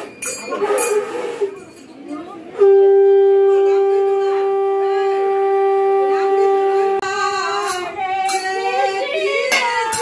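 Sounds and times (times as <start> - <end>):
faint voices: 0.0 - 10.0
conch shell blast: 2.6 - 7.0.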